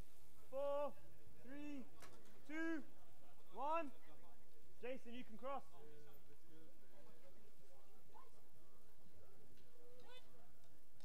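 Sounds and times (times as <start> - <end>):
man shouting calls: 0.5 - 1.9, 2.5 - 2.9.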